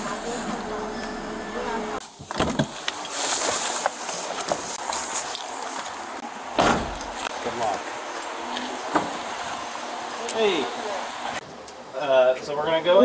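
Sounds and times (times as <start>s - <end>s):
short heavy thump: 6.6s - 7.2s.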